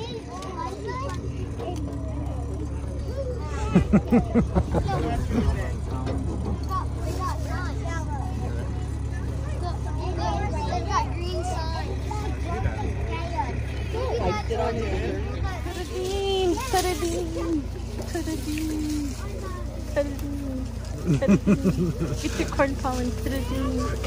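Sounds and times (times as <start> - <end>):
riders chattering: 0.0 - 24.0
wagon rumbling: 0.0 - 24.0.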